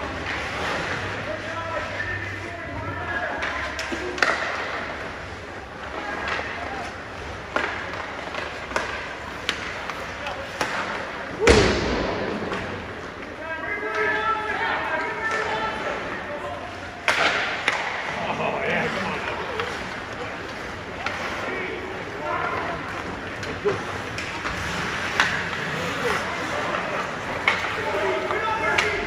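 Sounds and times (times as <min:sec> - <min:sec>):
hockey sticks and puck clacking: 0:00.0 - 0:29.0
loud bang against boards: 0:11.4 - 0:12.6.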